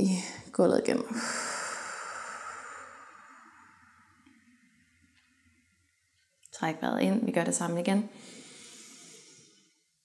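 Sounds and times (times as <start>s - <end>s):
long out-breath: 1.1s - 4.1s, 8.2s - 9.8s.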